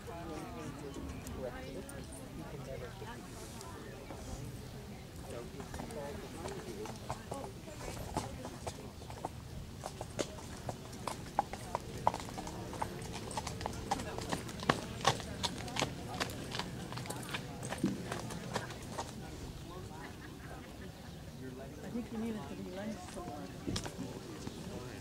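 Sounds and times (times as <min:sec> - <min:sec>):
horse hoofbeats on dirt: 0:05.6 - 0:19.6.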